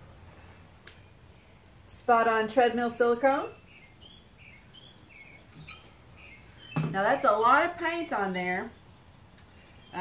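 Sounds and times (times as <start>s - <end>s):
woman's voice: 1.9s - 3.6s, 6.8s - 8.8s
faint bird chirps: 3.5s - 7.0s.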